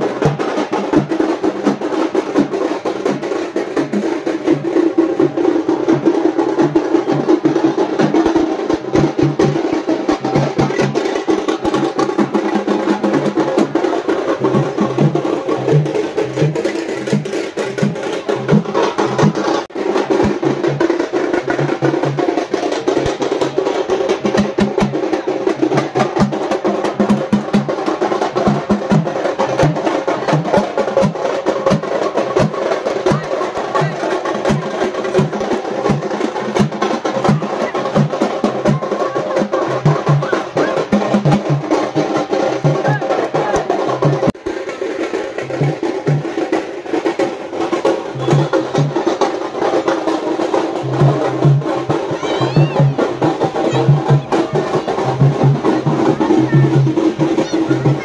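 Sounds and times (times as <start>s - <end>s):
frame drums beaten with sticks: 0.0s - 58.0s.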